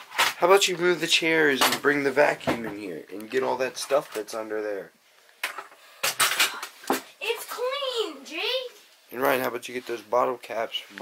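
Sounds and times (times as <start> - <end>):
child's wordless sing-song voice: 7.2 - 8.9.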